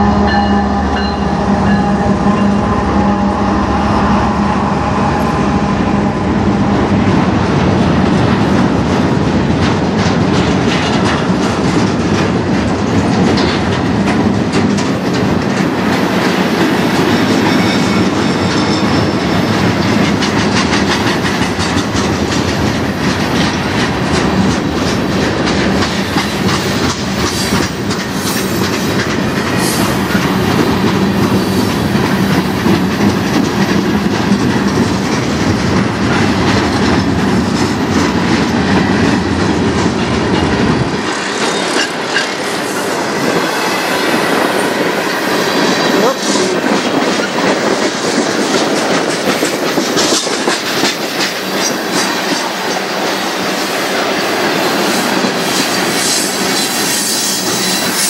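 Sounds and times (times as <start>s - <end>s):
freight train rolling past: 0.0s - 58.0s
wheels clicking over rail joints: 7.5s - 58.0s.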